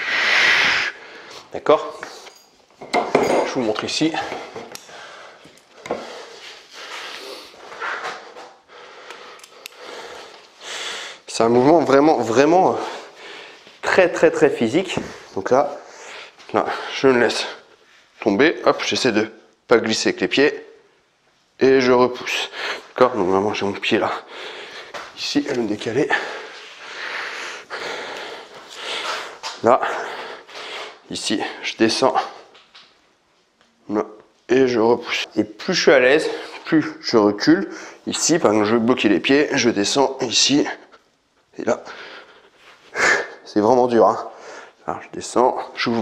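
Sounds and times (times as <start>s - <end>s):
man breathing heavily: 4.3s - 11.3s, 12.7s - 13.8s, 14.9s - 17.9s, 24.1s - 25.1s, 26.0s - 31.6s, 41.8s - 43.5s.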